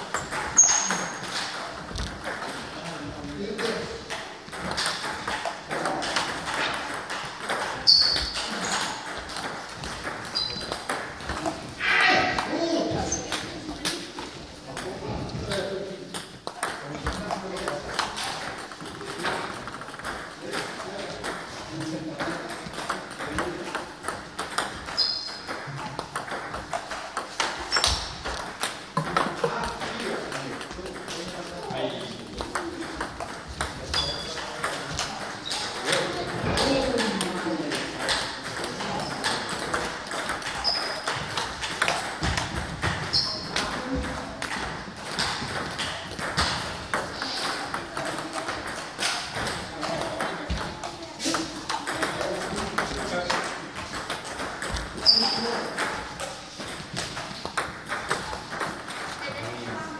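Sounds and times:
table tennis balls clicking: 0:00.0 - 0:59.9.

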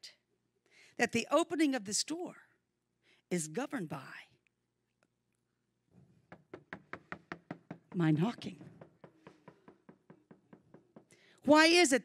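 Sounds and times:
knuckles knocking on a door: 0:06.3 - 0:11.2.

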